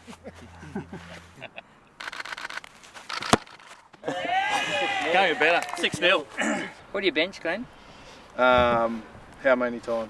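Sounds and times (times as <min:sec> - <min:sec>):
rapid sharp clicks: 0:02.0 - 0:03.7.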